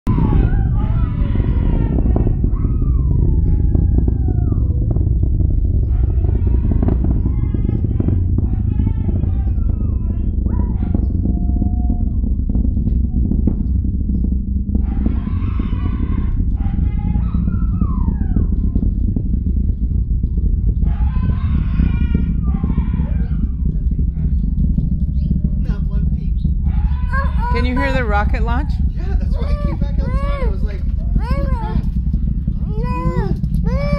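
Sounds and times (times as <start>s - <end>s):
rocket launch rumble with crackle: 0.0s - 33.9s
huskies howling: 0.1s - 12.5s, 14.8s - 24.3s, 26.6s - 33.9s.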